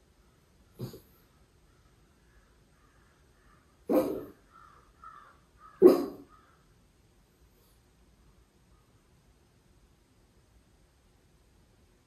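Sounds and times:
dog barking: 0.8 - 1.1, 3.9 - 4.4, 5.7 - 6.4
soft high dog sounds: 3.9 - 4.4, 5.8 - 6.3.

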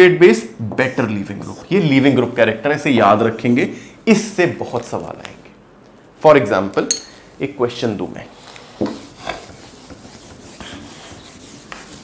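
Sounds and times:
duster wiping whiteboard: 8.2 - 12.0.

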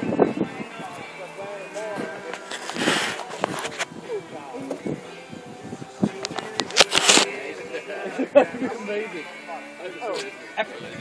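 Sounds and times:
people talking: 0.4 - 5.1, 6.0 - 11.0
people laughing: 7.7 - 9.1.

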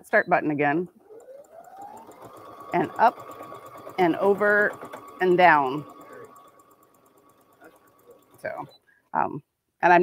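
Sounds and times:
ticking of stitches: 0.0 - 9.3
sewing machine motor whine: 0.4 - 8.8.

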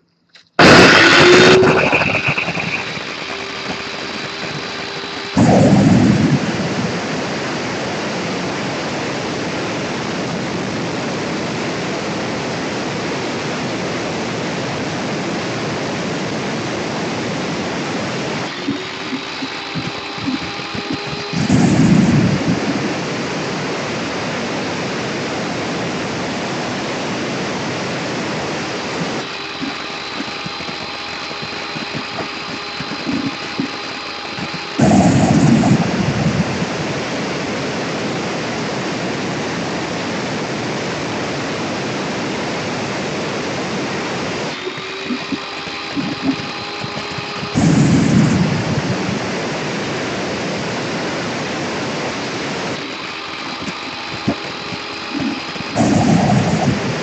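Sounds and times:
saw motor whine: 0.5 - 8.8, 14.7 - 24.3, 27.6 - 37.2, 44.5 - 50.4, 51.2 - 57.0.

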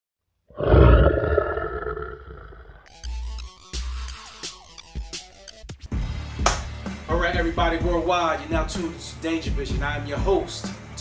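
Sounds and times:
lion roaring: 0.5 - 2.9.

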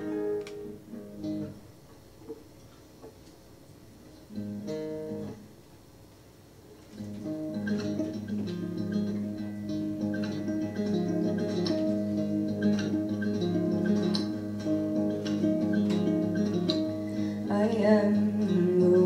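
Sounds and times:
classical guitar played solo: 0.0 - 1.7, 4.3 - 5.4, 7.0 - 19.0.

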